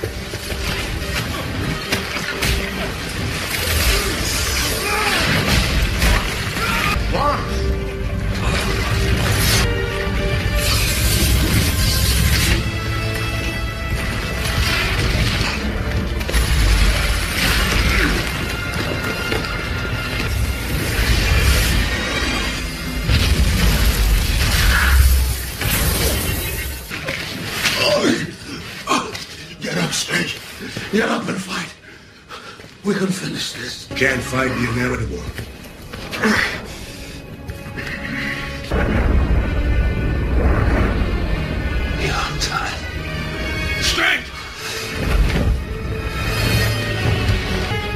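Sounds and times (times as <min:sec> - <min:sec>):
action film music: 0:00.0 - 0:47.9
dramatic orchestral score: 0:00.0 - 0:47.9
low rumble of explosions: 0:38.7 - 0:41.8.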